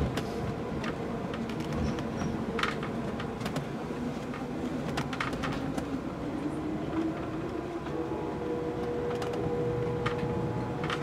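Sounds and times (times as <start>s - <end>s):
train car rolling rumble: 0.0s - 11.0s.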